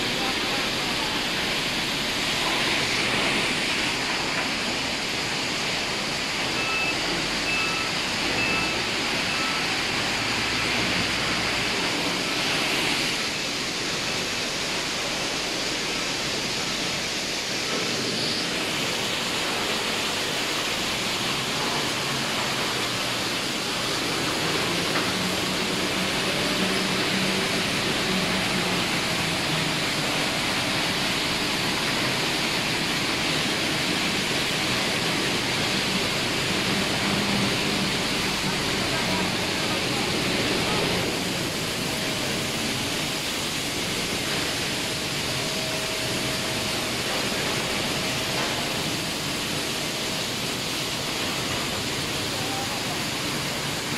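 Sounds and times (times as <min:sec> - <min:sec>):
industrial machinery din: 0:00.0 - 0:53.9.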